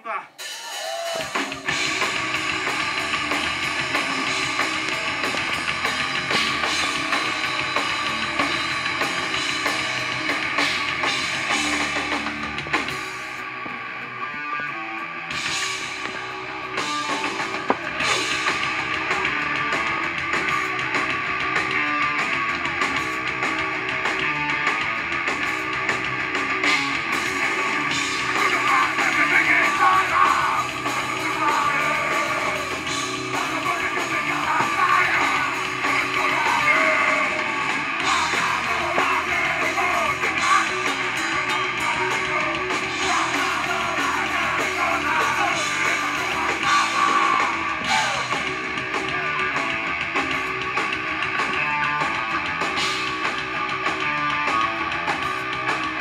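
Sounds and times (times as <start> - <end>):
drum kit with cymbals: 0.0 - 14.1, 15.3 - 56.0
bass guitar: 0.0 - 56.0
distorted electric guitar: 0.0 - 56.0.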